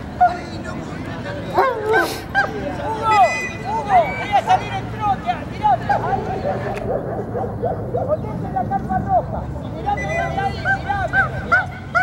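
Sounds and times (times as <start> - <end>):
crowd murmur: 0.0 - 12.0.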